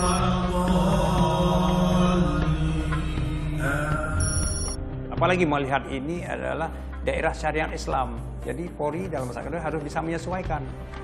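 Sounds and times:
men chanting in unison: 0.2 - 4.2.

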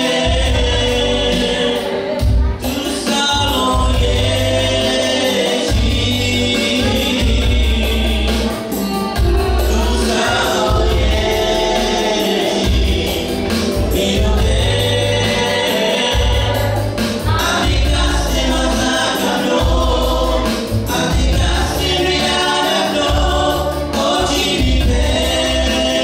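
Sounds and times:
deep bass line: 0.0 - 26.0
electronic keyboard chords: 0.0 - 26.0.

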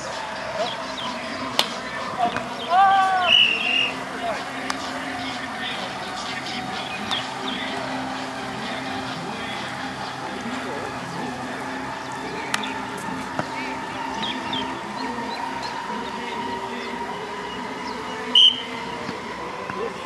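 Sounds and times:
voices outdoors: 0.0 - 20.0
ball slap: 1.5 - 2.6.

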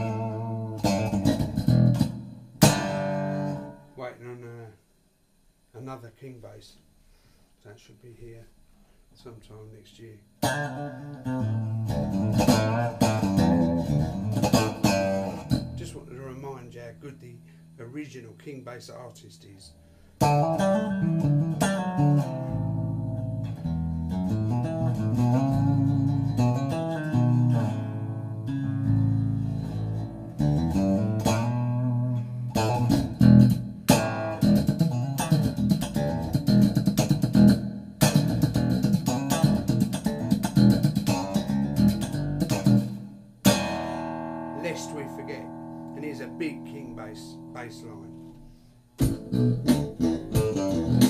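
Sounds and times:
electric bass guitar solo: 0.0 - 4.0, 10.4 - 16.5, 20.2 - 51.0.

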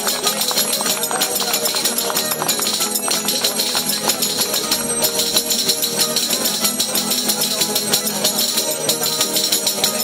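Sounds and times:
hands clapping: 0.0 - 10.0
strummed guitar: 0.0 - 10.0
tambourines jingling: 0.0 - 10.0.

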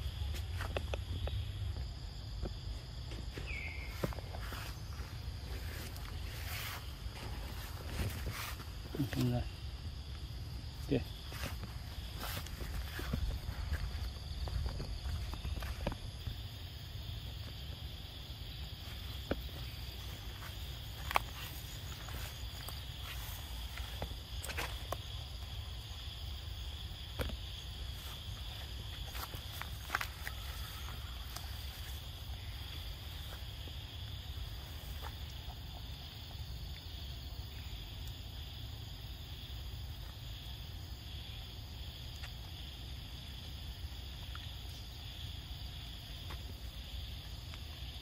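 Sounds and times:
high-pitched insect chorus: 0.0 - 48.0.

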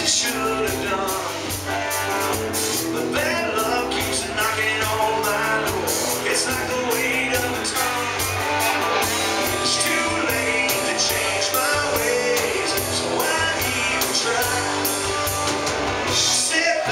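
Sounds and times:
man singing lead vocal: 0.0 - 1.8, 2.8 - 15.5, 16.1 - 16.9
bass guitar: 0.0 - 16.9
drums with cymbals: 0.0 - 16.9
electric guitars: 0.0 - 16.9.

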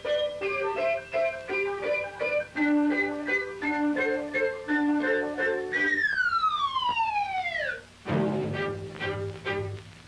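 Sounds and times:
falling slide whistle: 0.0 - 7.9
cartoon music: 0.0 - 8.8.

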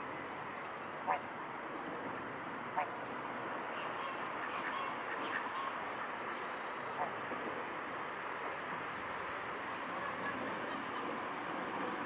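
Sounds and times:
steady background noise: 0.0 - 12.0
waterfowl calling: 3.8 - 5.8.

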